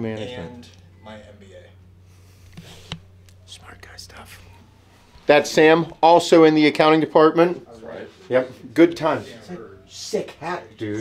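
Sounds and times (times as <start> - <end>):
steady low hum: 0.0 - 11.0
faint whispering: 3.4 - 4.7.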